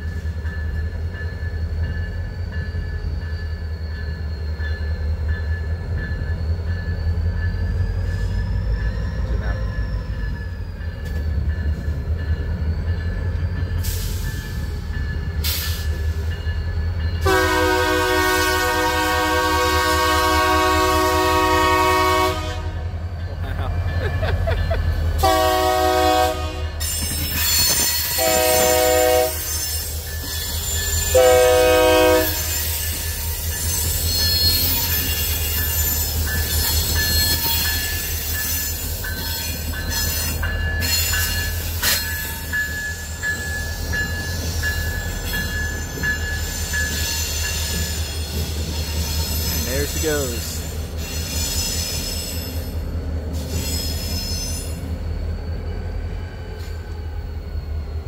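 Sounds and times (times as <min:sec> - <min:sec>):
train wheels squealing: 0:00.0 - 0:19.1, 0:23.0 - 0:58.0
locomotive air horn blasts: 0:17.2 - 0:23.0, 0:25.2 - 0:26.8, 0:28.1 - 0:29.5, 0:31.1 - 0:32.5.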